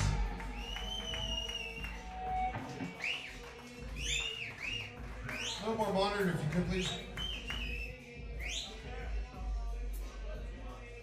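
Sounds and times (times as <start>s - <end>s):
high whistle-like notes: 0.0s - 5.7s.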